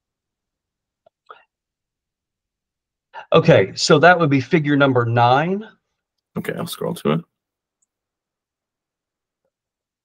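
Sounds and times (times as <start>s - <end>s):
man speaking: 3.2s - 5.8s, 6.4s - 7.3s.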